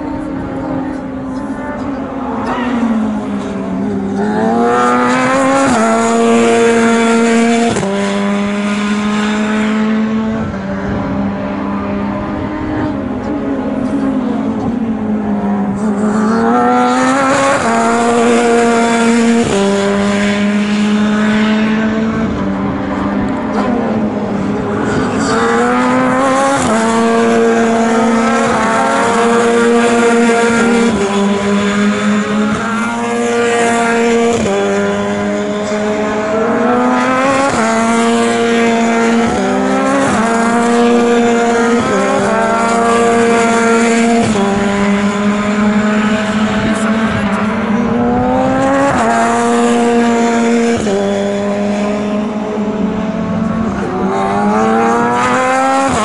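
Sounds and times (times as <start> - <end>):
racing car engine shifting gears: 0.0 - 56.0.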